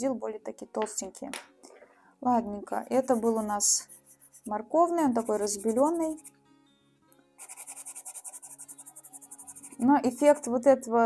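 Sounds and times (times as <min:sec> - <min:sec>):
pencil scratching paper: 0:02.8 - 0:06.3, 0:07.4 - 0:10.5.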